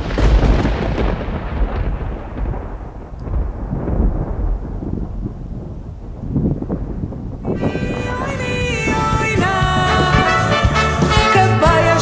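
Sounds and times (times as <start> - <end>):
rolling thunder: 0.0 - 11.3.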